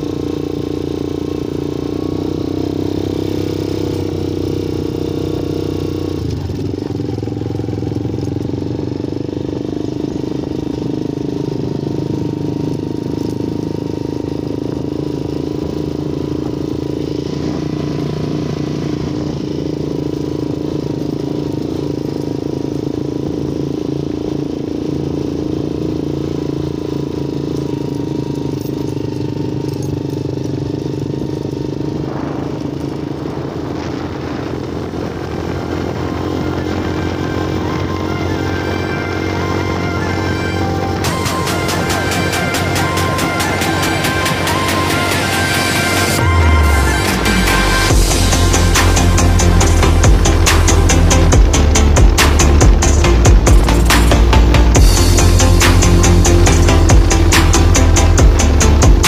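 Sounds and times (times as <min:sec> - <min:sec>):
small motorcycle engine running: 0:00.0 - 0:59.0.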